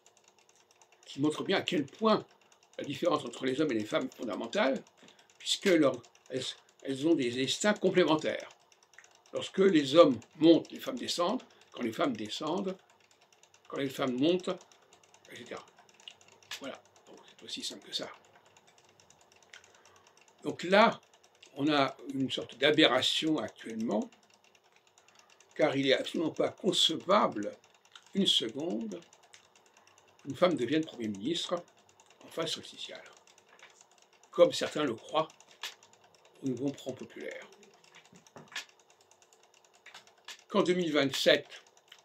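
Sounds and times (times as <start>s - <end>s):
faint small clicks: 0.0s - 42.0s.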